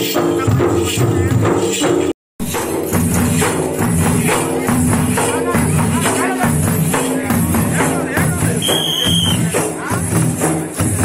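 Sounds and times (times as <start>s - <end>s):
barrel drums beaten fast: 0.0s - 11.0s
jingling percussion: 0.0s - 11.0s.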